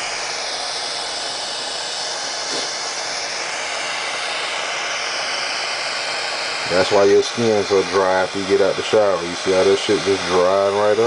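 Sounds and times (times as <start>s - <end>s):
propane torch hissing: 0.0s - 11.0s.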